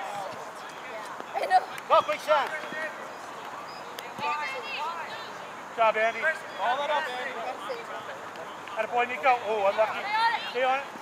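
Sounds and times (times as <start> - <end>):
faint distant calls: 0.0 - 10.7
outdoor background noise: 0.0 - 11.0.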